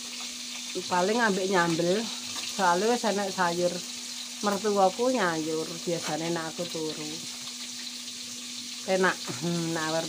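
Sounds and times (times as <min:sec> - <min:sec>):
food sizzling in hot oil: 0:00.0 - 0:10.0.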